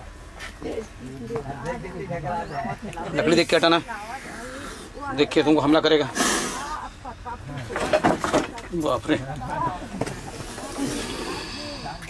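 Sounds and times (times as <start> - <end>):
people talking and calling out: 0.4 - 12.0.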